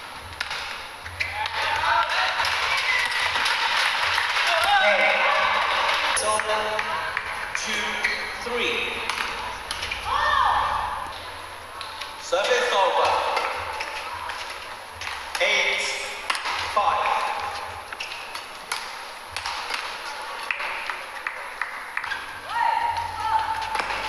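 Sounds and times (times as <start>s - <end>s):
rackets striking shuttlecock: 0.4s - 3.7s, 7.6s - 10.0s, 11.8s - 22.3s
players shouting: 1.1s - 11.4s, 22.1s - 24.0s.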